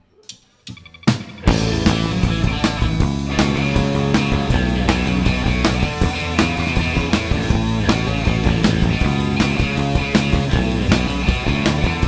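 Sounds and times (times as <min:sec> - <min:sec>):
live rock band playing: 0:00.7 - 0:12.0.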